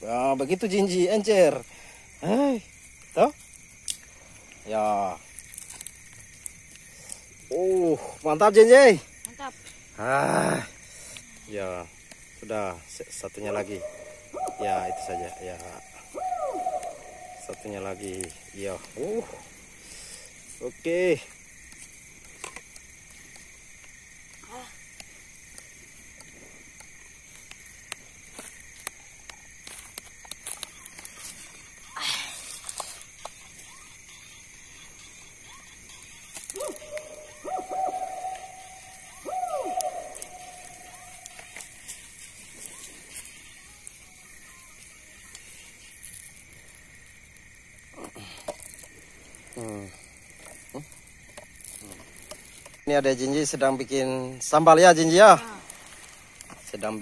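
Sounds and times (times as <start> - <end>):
charcoal fire crackling: 0.0 - 57.0
night insects trilling: 0.0 - 57.0.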